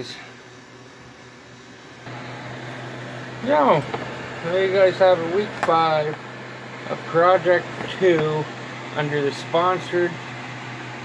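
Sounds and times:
fan rushing: 0:00.0 - 0:11.0.

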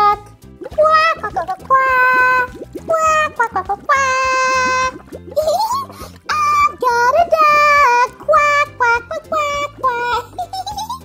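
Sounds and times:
children's music: 0:00.0 - 0:11.0.

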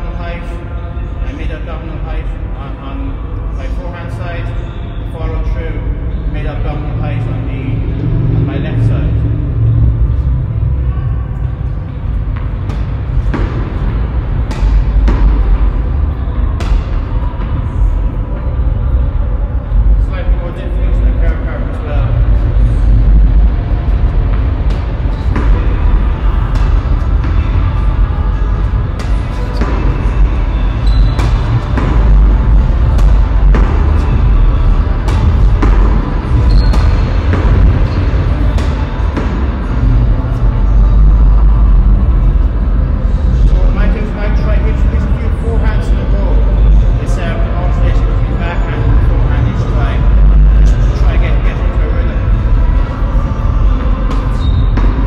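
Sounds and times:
steady low rumble: 0:00.0 - 0:55.0.

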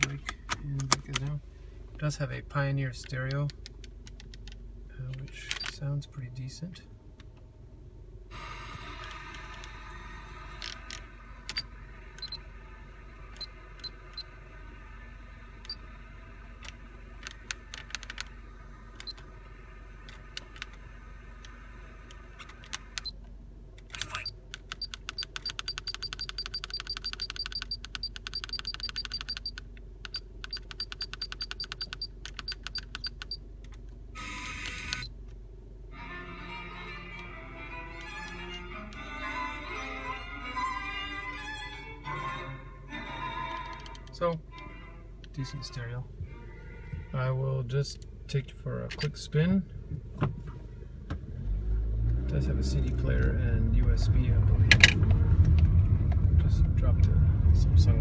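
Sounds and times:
rotary knob clicking: 0:16.6 - 0:18.3, 0:23.8 - 0:33.8.

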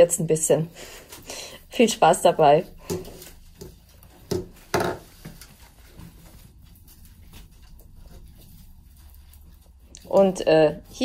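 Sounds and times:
rustling of flower stems: 0:00.0 - 0:11.0
knocks on wooden table: 0:04.3 - 0:05.0.

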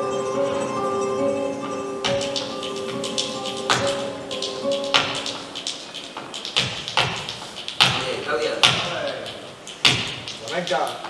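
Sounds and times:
flamenco guitar chords: 0:00.0 - 0:08.0
dance shoes stamping on wooden floor: 0:02.0 - 0:09.2, 0:09.8 - 0:11.0.

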